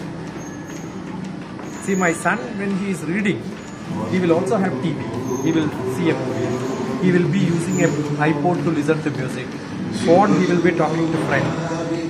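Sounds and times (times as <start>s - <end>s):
man speaking: 1.8s - 11.8s.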